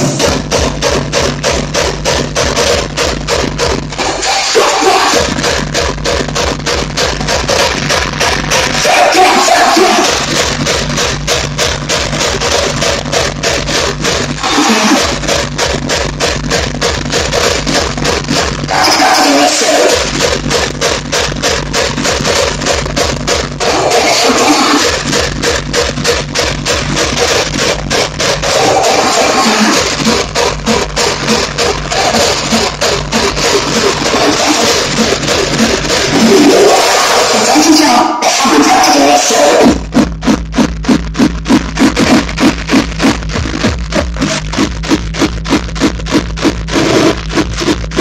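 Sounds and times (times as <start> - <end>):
fast kick drum: 0.0 - 37.9, 38.5 - 48.0
hardcore techno music: 0.0 - 48.0.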